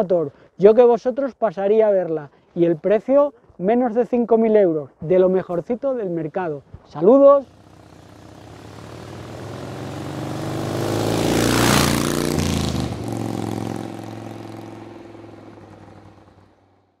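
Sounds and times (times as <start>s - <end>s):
motorcycle engine passing by: 7.4s - 16.9s.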